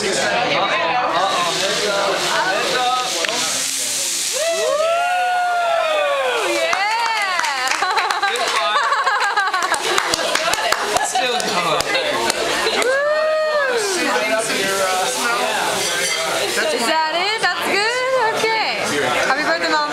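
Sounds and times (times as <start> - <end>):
people exclaiming and chattering: 0.0 - 19.9
flambe igniting with hissing whoosh: 1.1 - 19.5.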